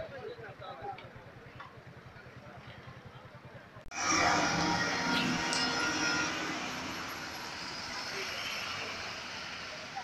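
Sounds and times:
fire engines driving past: 1.1s - 10.0s.

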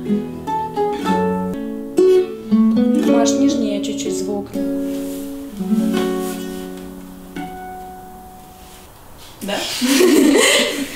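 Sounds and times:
guitar and ukuleles strummed chord: 0.0s - 8.8s.

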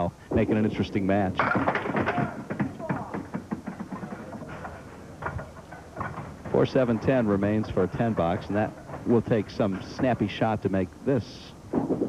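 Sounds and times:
bowling pins clattering on wooden lane: 0.4s - 10.3s.

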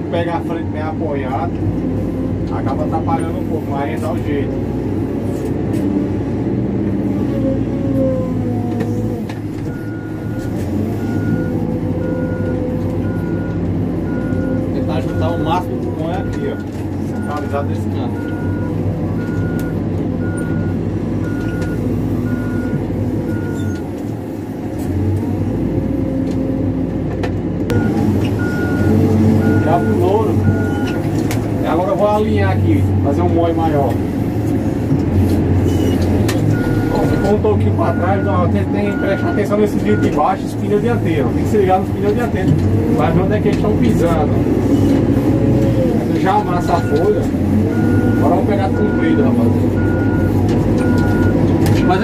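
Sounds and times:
diesel engine under load: 0.0s - 52.0s
reversing alarm beeping: 9.7s - 23.8s, 27.7s - 31.0s, 35.7s - 40.2s, 46.4s - 52.0s.

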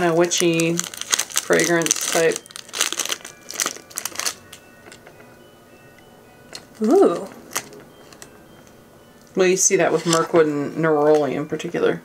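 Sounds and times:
packaging crinkling: 0.0s - 5.6s, 6.4s - 9.4s
faint steady tones: 0.0s - 12.0s.

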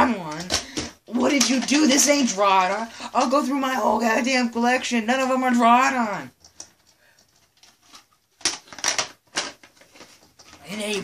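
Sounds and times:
plastic tape case clacks: 6.4s - 10.6s.

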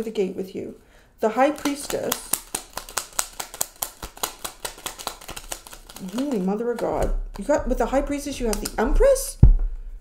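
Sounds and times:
cards being shuffled: 1.5s - 7.6s, 8.3s - 8.9s.

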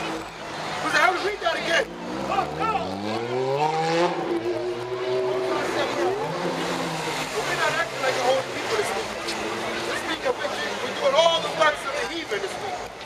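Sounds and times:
vehicle engine revving: 0.0s - 11.7s
voices: 0.0s - 13.0s.

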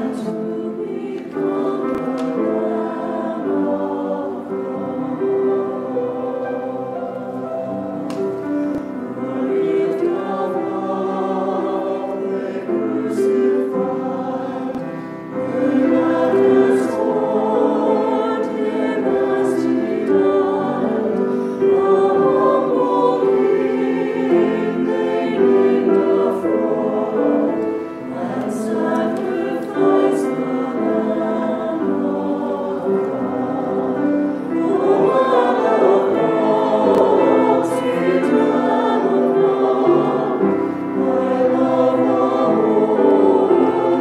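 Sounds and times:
church choir singing in harmony: 0.0s - 44.0s.

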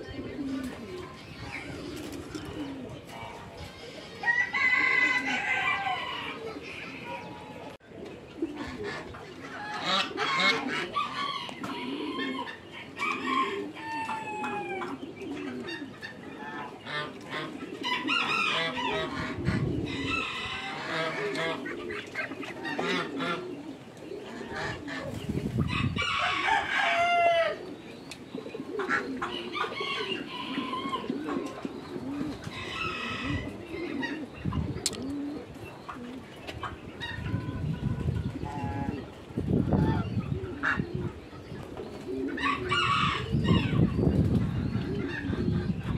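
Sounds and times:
clucking and crowing calls: 0.0s - 45.9s
geese and ducks calling: 8.4s - 45.9s.

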